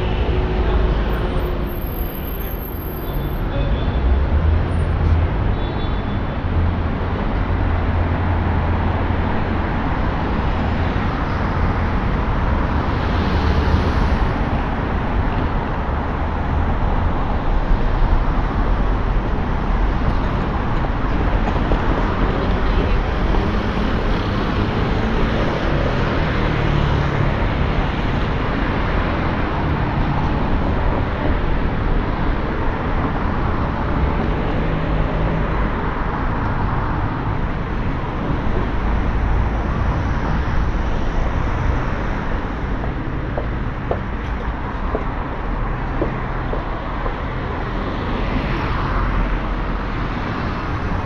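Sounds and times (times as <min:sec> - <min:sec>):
cars driving past: 0:06.4 - 0:51.0.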